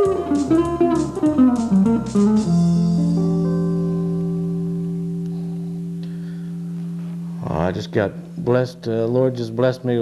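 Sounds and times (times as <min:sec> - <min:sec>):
electric guitar chord ringing: 0:00.0 - 0:08.7.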